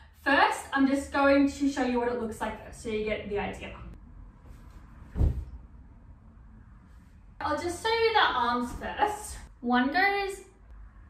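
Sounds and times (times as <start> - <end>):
footstep thud on wooden floor: 5.1 - 5.6.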